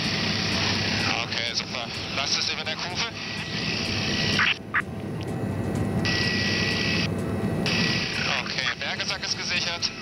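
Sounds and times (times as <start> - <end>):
helicopter engine and rotor rush: 0.0 - 10.0.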